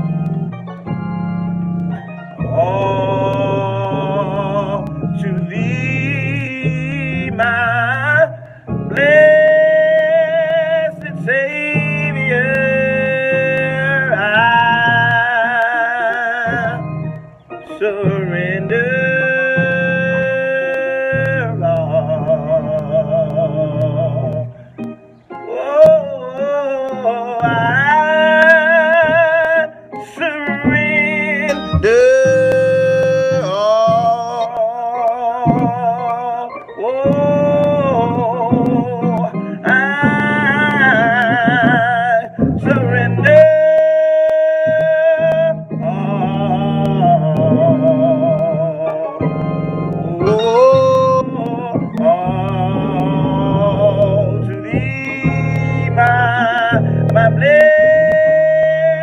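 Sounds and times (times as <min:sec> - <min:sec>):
instrumental accompaniment: 0:00.0 - 0:59.0
man singing a gospel song: 0:01.9 - 0:59.0.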